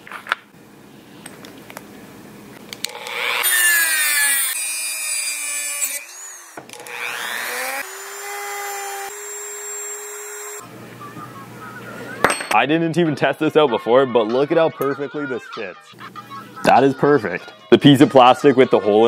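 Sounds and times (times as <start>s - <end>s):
rotary tool whining on metal: 2.8s - 10.6s.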